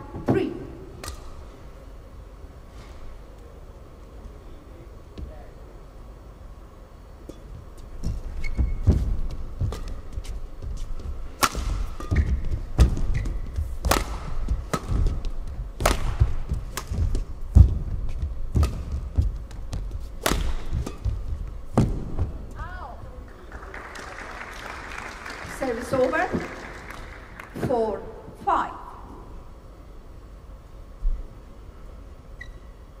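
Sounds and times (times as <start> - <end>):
racket striking shuttlecock: 8.9 - 22.3.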